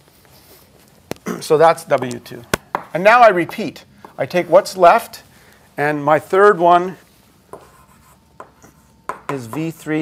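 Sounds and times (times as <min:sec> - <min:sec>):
chalk tapping on blackboard: 0:07.5 - 0:09.8.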